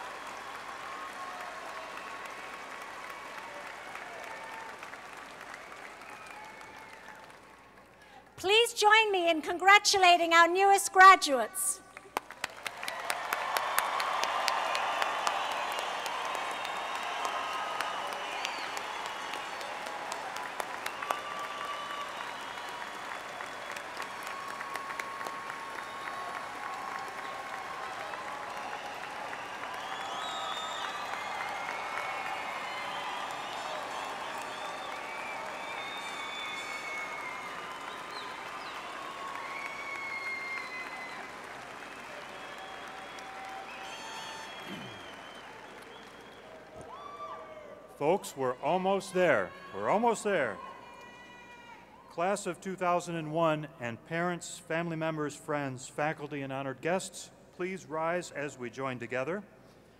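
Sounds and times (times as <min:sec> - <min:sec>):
arena crowd applauding: 0:00.0 - 0:52.1.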